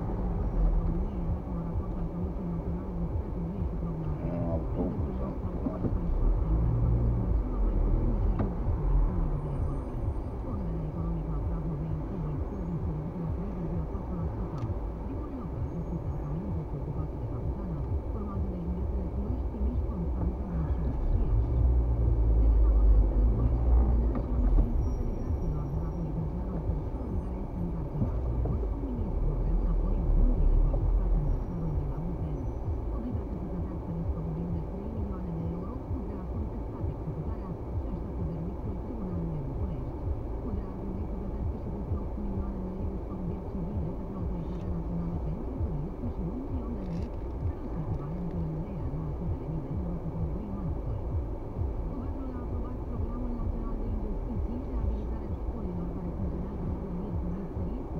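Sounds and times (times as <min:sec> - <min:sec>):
car engine and tyres rumbling: 0:00.0 - 0:57.9
muffled voice: 0:00.0 - 0:57.9.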